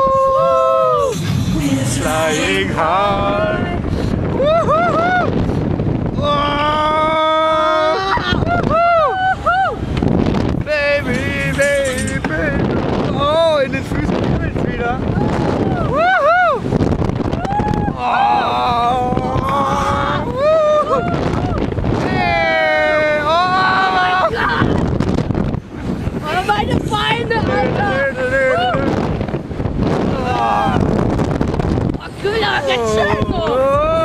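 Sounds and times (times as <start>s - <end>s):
wind on microphone: 0.0s - 34.0s
riders yelling: 22.0s - 24.8s.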